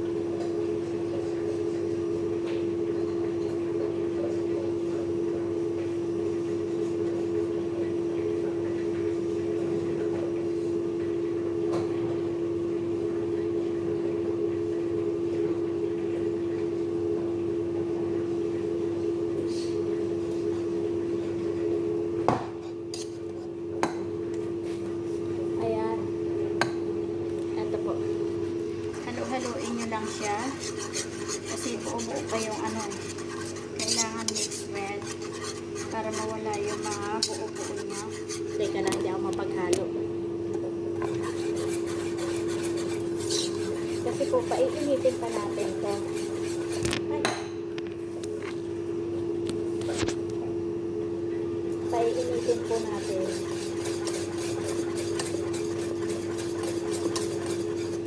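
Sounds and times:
appliance motor hum: 0:00.0 - 0:58.0
spoon scraping a pan: 0:22.9 - 0:23.2, 0:28.9 - 0:39.0, 0:41.0 - 0:47.0, 0:52.0 - 0:58.0.

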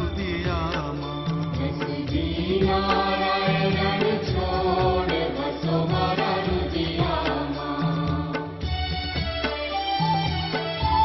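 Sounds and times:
voices chanting over instruments: 0:00.2 - 0:08.8.

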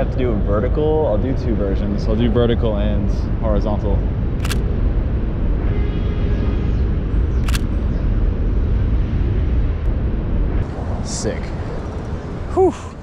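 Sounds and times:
traffic rumble: 0:00.0 - 0:13.0
wind rumble: 0:00.0 - 0:13.0
camera shutter click: 0:04.4 - 0:04.6, 0:07.4 - 0:07.7.

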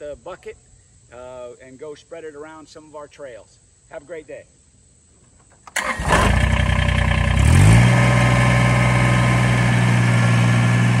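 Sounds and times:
diesel tractor engine running: 0:05.8 - 0:11.0.

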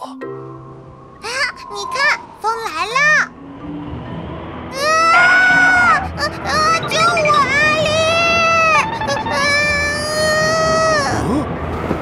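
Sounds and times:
cartoon character wailing: 0:04.8 - 0:08.8.

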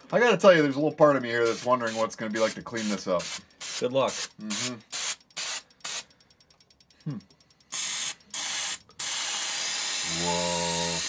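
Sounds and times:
aerosol can spraying hiss: 0:01.5 - 0:06.1, 0:07.8 - 0:11.0.

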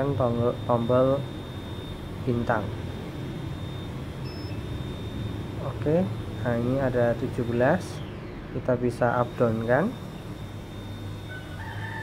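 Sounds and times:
short high-pitched electronic beep: 0:00.0 - 0:08.1, 0:09.0 - 0:12.0
faint thin whine: 0:00.0 - 0:12.0
steady low hum: 0:00.0 - 0:12.0.

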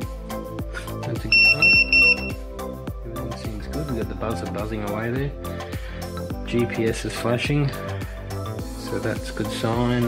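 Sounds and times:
background music: 0:00.0 - 0:10.0
high-pitched buzzer beeps: 0:01.3 - 0:02.4.

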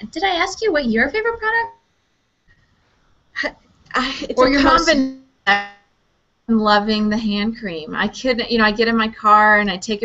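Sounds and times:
woman speaking: 0:00.0 - 0:01.8, 0:03.4 - 0:05.8, 0:06.5 - 0:10.0.

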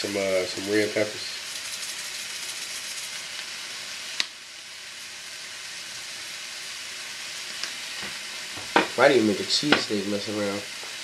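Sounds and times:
chicken sizzling in frying pan: 0:00.0 - 0:11.0.

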